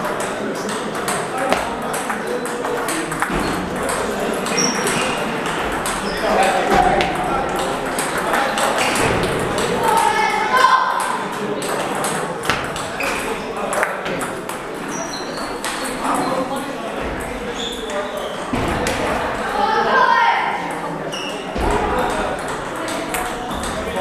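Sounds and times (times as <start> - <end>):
table tennis balls clicking: 0.1 - 10.2, 10.9 - 17.3, 22.1 - 24.0.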